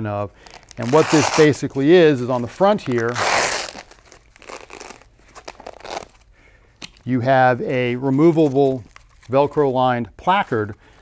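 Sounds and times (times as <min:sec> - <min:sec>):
fabric rustling and crinkling: 0:00.4 - 0:06.3.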